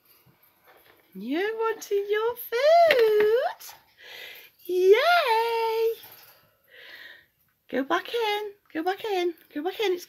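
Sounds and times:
woman saying yay sing-song: 0:01.2 - 0:03.7, 0:04.7 - 0:06.0.

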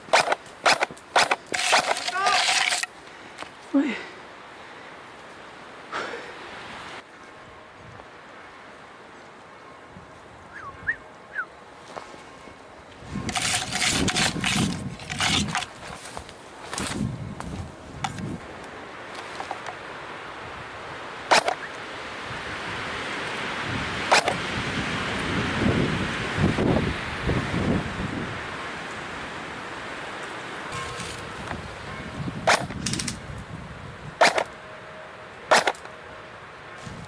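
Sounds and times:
footsteps in brush: 0:00.0 - 0:03.7, 0:11.8 - 0:19.8, 0:30.8 - 0:31.7, 0:36.8 - 0:37.0
branches scraping against person: 0:00.0 - 0:03.8, 0:11.8 - 0:20.1, 0:30.2 - 0:31.8, 0:36.7 - 0:37.0
sharp branch cracks: 0:34.2 - 0:34.5, 0:35.5 - 0:35.9.

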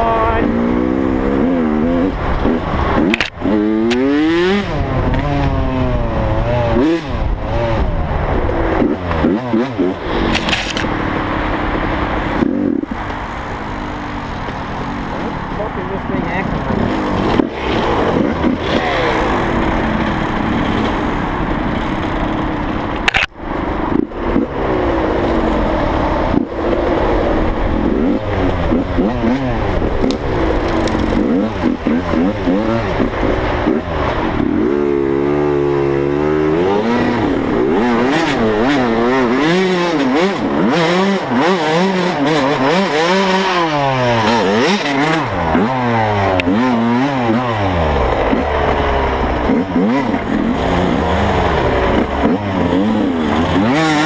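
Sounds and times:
dirt bike engine revving: 0:00.0 - 0:13.0, 0:15.8 - 0:23.2, 0:23.9 - 0:54.0.

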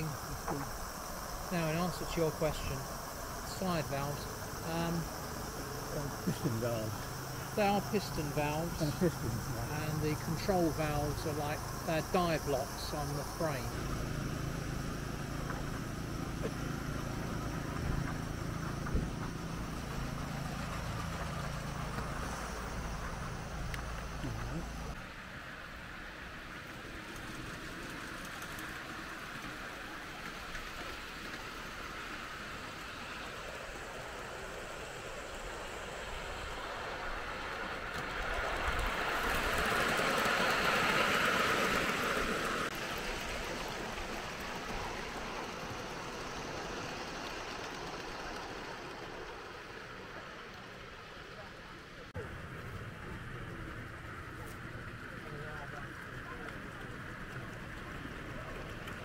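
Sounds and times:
steady low hum: 0:00.0 - 0:50.6
miniature train running on rails: 0:00.0 - 0:59.0.

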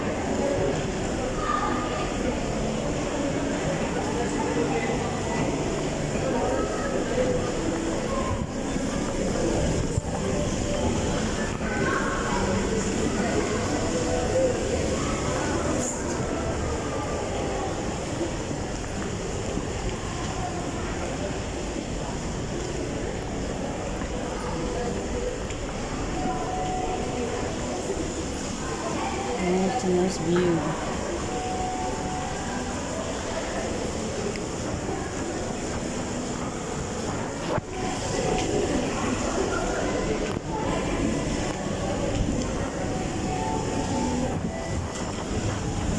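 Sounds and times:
faint voices: 0:00.0 - 0:45.9
shopping mall din: 0:00.0 - 0:45.9
ventilation noise: 0:00.0 - 0:45.9.

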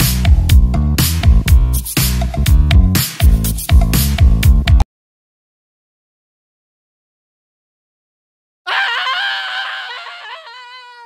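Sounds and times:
rooster crowing: 0:08.7 - 0:11.0.

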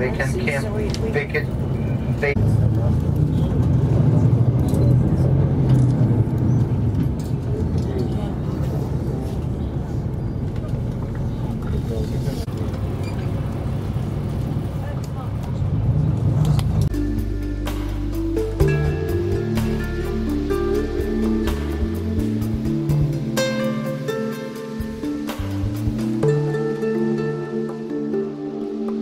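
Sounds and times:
bus engine and road rumble: 0:00.0 - 0:29.0.

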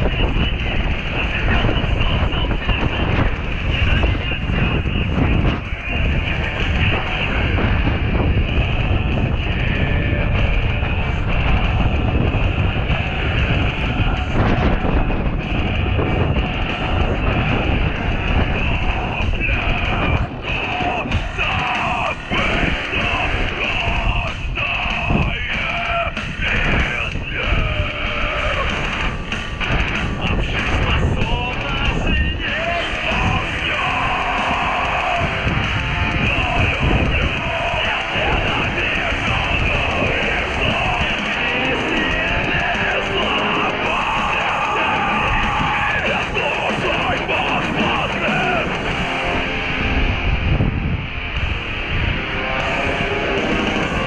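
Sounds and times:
skate wheels rolling on concrete: 0:00.0 - 0:50.4
music playing: 0:00.0 - 0:54.0.

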